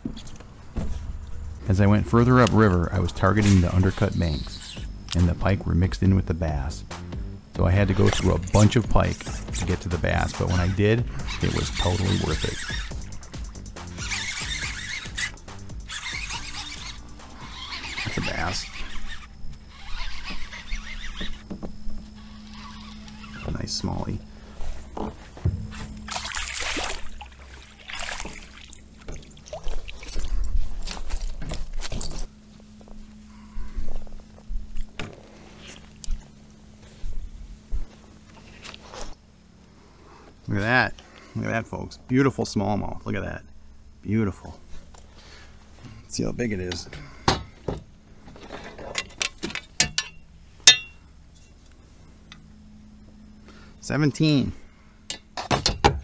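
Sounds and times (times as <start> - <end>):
steady low hum: 0.0 - 56.0
water splashing: 25.7 - 30.3
sharp knocks and clinks: 48.4 - 51.6
short metallic ring: 49.8 - 51.6.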